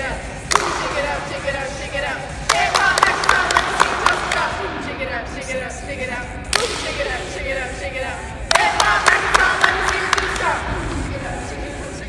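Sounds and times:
sharp cracks: 0.5s - 1.0s.

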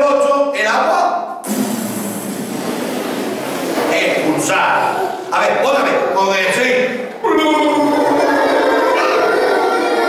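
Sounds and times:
steady rushing hiss: 1.4s - 6.0s
man's voice: 3.9s - 8.4s.

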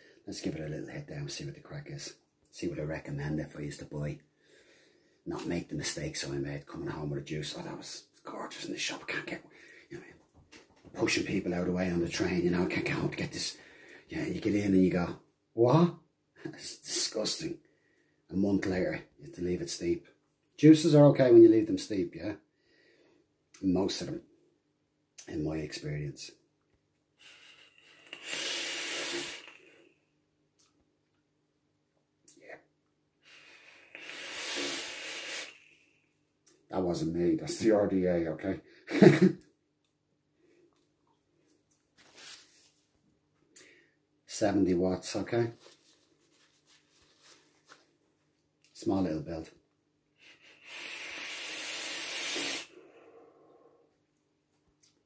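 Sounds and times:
air hissing through vape: 27.2s - 29.9s, 33.3s - 36.0s, 50.2s - 53.0s
person exhaling: 27.2s - 30.0s, 33.2s - 36.1s, 50.2s - 53.9s.

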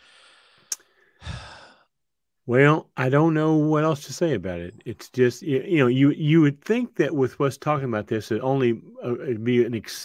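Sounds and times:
man sighing: 0.0s - 1.9s
man breathing out: 0.0s - 2.0s.

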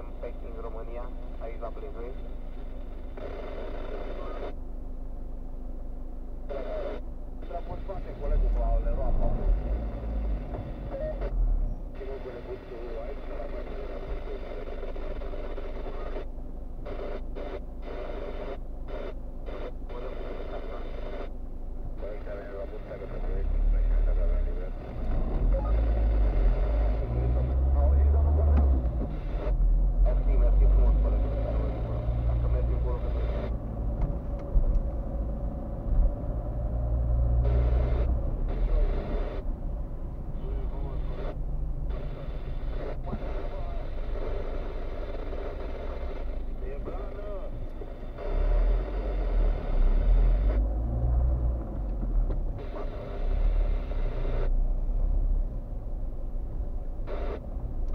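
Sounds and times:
muffled voices from car radio: 0.0s - 5.0s, 5.8s - 57.9s
car engine: 0.0s - 57.9s
road rumble: 0.0s - 57.9s.

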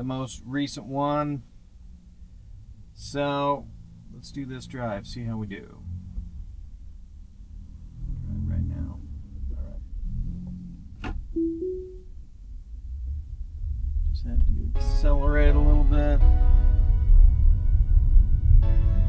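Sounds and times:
background music: 11.4s - 12.1s
two-note rising chime: 11.4s - 12.1s.

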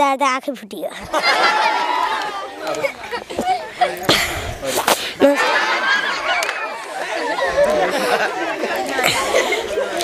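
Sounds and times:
children chattering: 0.8s - 10.0s.

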